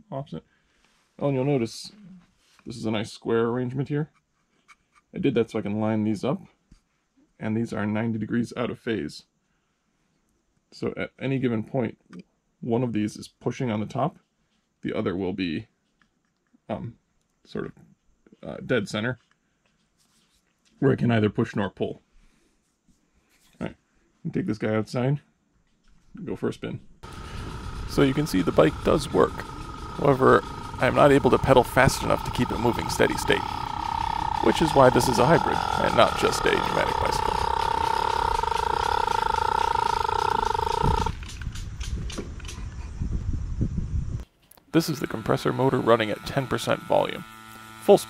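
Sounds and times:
rustling: 0:19.2 - 0:20.8
pneumatic drivetrain whine: 0:27.0 - 0:41.4, 0:44.8 - 0:48.0.

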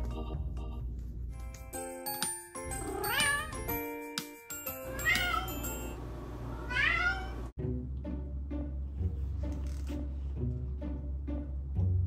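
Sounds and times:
cat meowing: 0:02.9 - 0:03.6, 0:04.8 - 0:05.6, 0:06.6 - 0:07.5.

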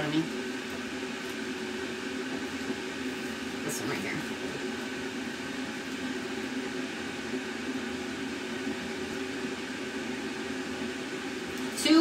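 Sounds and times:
appliance humming: 0:00.0 - 0:12.0.

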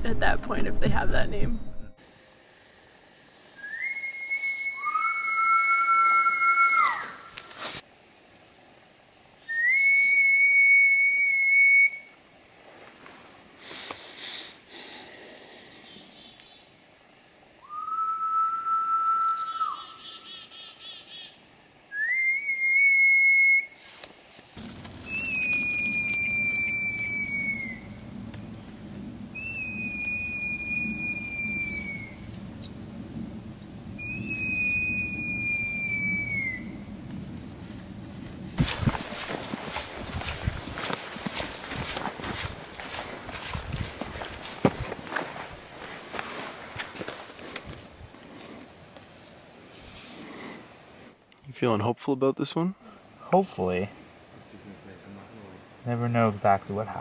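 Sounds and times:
long whistled tones: 0:03.5 - 0:07.5, 0:09.4 - 0:12.2, 0:17.6 - 0:20.4, 0:21.9 - 0:24.0, 0:24.6 - 0:37.5.

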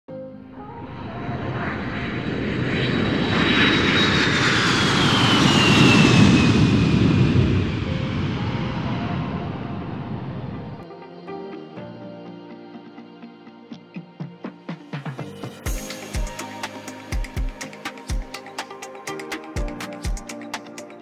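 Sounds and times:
jet aircraft flying past: 0:00.5 - 0:10.9
high jet whine falling in pitch: 0:00.8 - 0:10.8.

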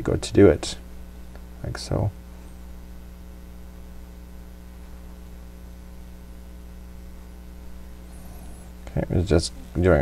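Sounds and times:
low electrical mains hum: 0:00.0 - 0:10.0.

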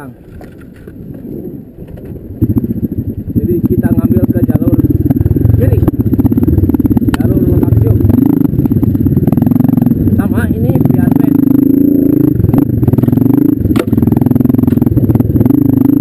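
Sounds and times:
dirt bike engine revving: 0:02.4 - 0:16.0.

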